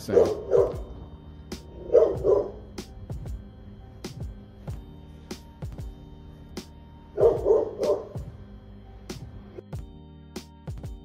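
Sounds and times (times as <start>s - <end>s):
dog barking: 0.0s - 1.0s, 1.8s - 2.7s, 7.2s - 8.2s
music with deep bass beat: 0.0s - 11.0s.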